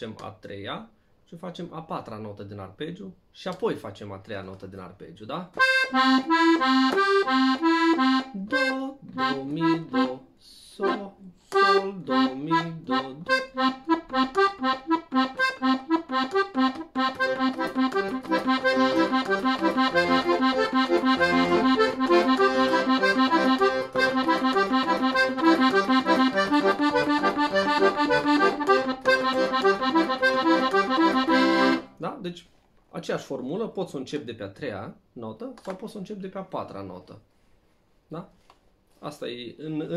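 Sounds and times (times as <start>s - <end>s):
accordion playing arpeggios: 5.6s - 32.0s.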